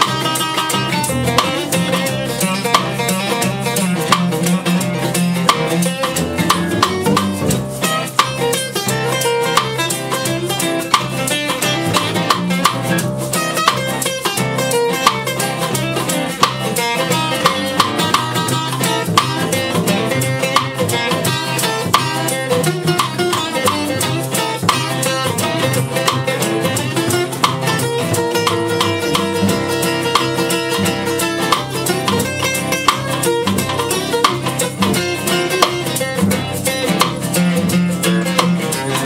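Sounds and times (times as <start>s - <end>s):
snare drum beat: 0.0s - 39.0s
strummed acoustic guitars: 0.0s - 39.0s
upright bass: 0.0s - 39.0s.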